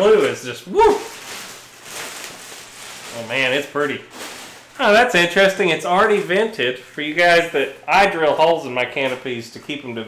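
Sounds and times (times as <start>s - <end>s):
foam model rustling in hands: 1.0s - 5.2s.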